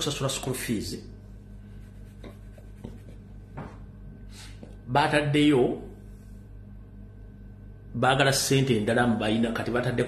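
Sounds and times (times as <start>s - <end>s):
steady low hum: 0.0s - 10.0s
fingers scratching scalp: 1.7s - 3.3s.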